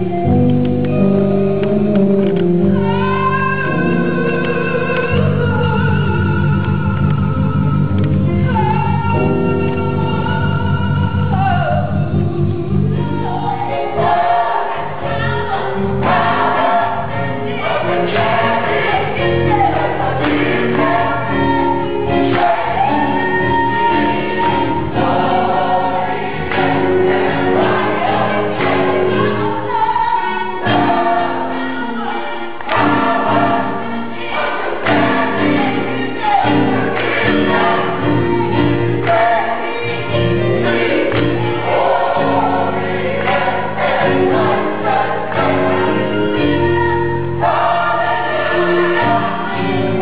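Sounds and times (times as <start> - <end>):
gospel choir singing: 0.0 - 50.0.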